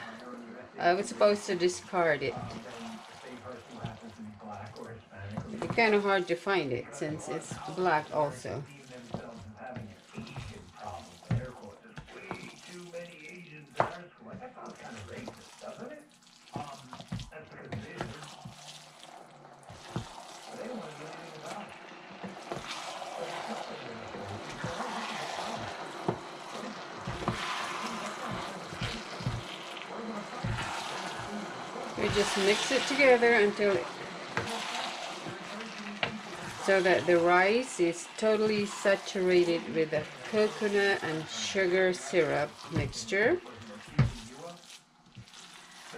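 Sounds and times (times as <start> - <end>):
sticky rice stirred in syrup: 0.0 - 45.9
utensils scraping a wok: 22.2 - 43.2.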